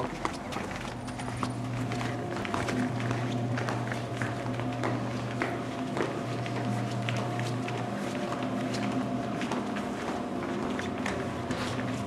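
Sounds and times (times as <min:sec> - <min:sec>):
low electrical hum: 0:00.0 - 0:12.0
footsteps on hard floor: 0:00.1 - 0:12.0.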